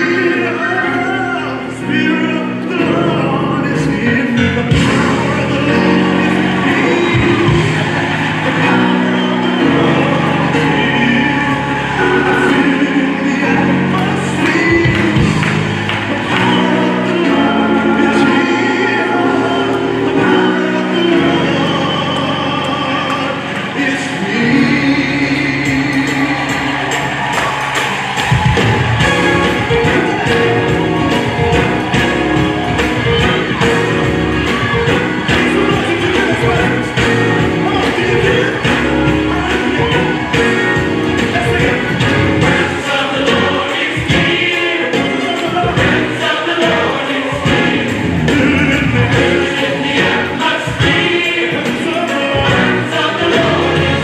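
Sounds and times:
choir singing a hymn: 0.0s - 27.3s, 28.9s - 54.0s.

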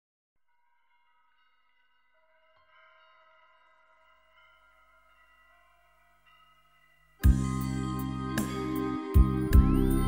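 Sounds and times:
ambient music ringing tones: 0.7s - 10.0s.

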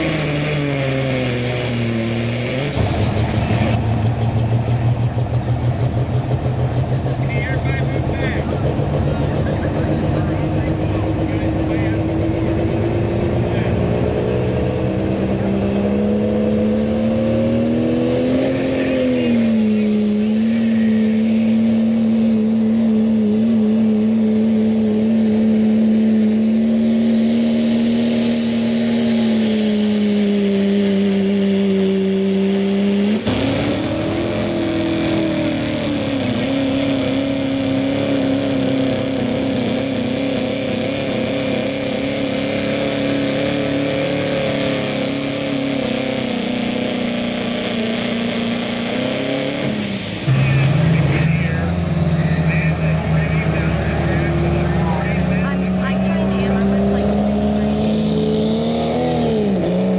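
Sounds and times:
diesel truck engine at high revs: 0.0s - 59.9s.

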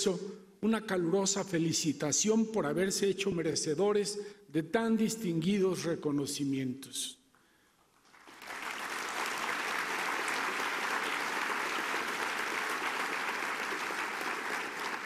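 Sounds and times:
large audience applauding: 8.0s - 15.0s.

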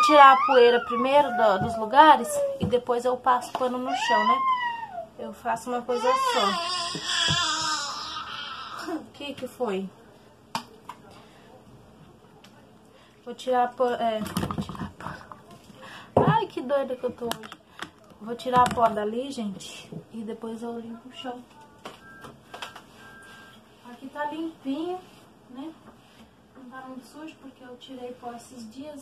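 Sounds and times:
short electronic beeps: 22.0s - 23.6s.

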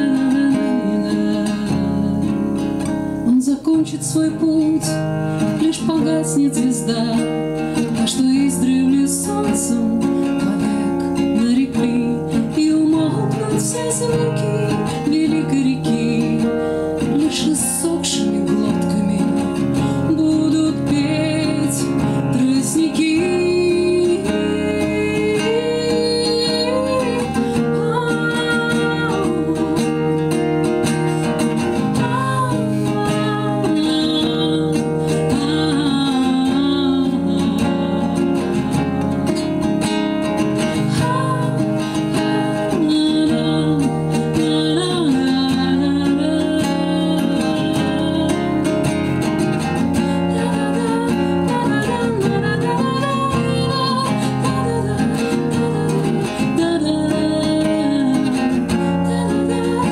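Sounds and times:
acoustic guitar strumming: 0.0s - 59.9s
woman singing: 0.0s - 59.9s.

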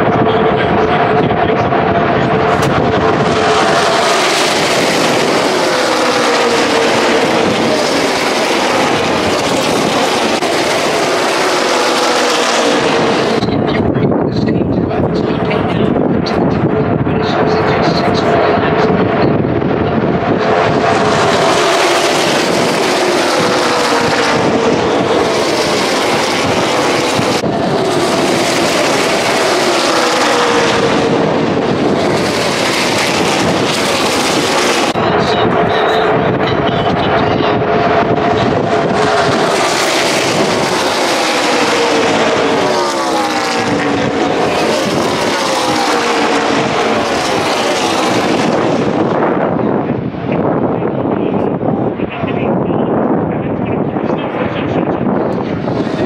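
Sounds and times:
race cars passing at speed: 0.0s - 56.0s.

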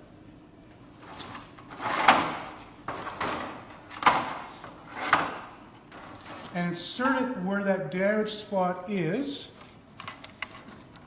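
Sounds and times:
metal grids scraping together: 1.0s - 6.6s.

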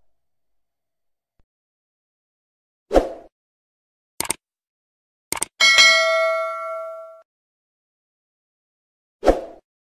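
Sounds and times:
bell chime ringing: 5.6s - 7.2s.

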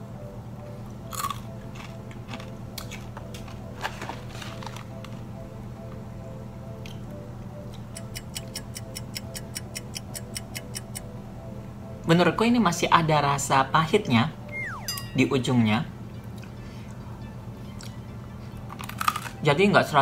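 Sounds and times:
soft background music: 0.0s - 20.0s
crunchy snack chewing: 1.1s - 3.6s, 18.7s - 19.4s.

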